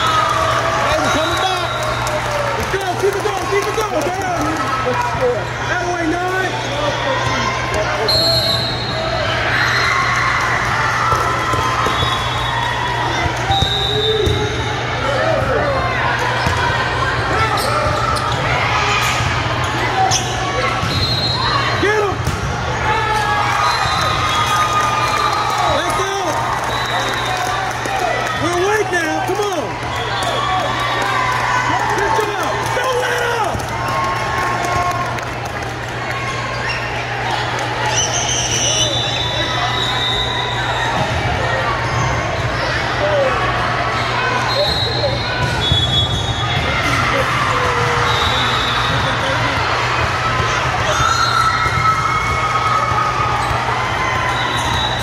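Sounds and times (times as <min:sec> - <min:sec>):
crowd chatter: 0:00.0 - 0:55.0
volleyballs hit and bouncing: 0:10.5 - 0:12.2.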